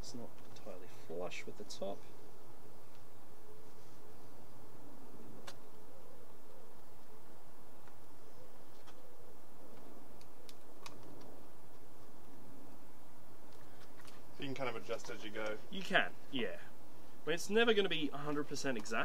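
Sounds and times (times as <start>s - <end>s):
background hiss: 0.0s - 19.0s
faint sharp clicks: 9.7s - 11.8s.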